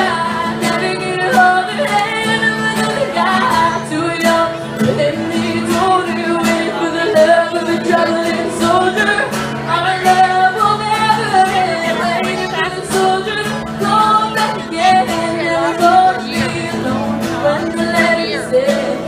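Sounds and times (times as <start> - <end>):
acoustic guitar: 0.0 - 19.0
woman singing a slow ballad: 0.0 - 19.0.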